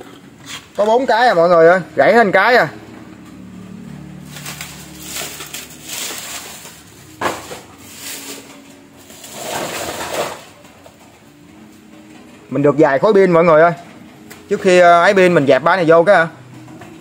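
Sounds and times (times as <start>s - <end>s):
tape dispensers rustling and scraping: 0.0s - 1.4s, 2.9s - 12.5s.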